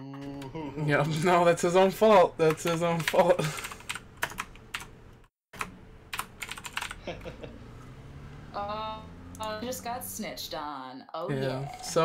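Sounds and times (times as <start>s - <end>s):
computer keyboard typing: 2.4s - 4.9s, 5.6s - 7.0s.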